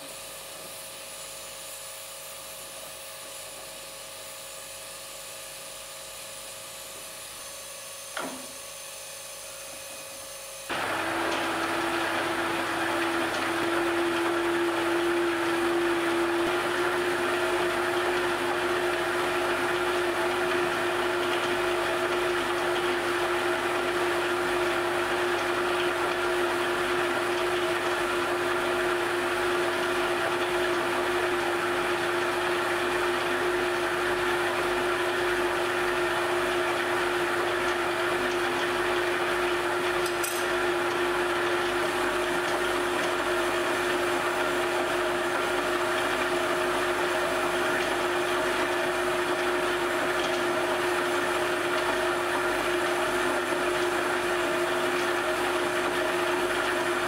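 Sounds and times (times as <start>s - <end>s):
lathe motor hum: 8.1s - 57.0s.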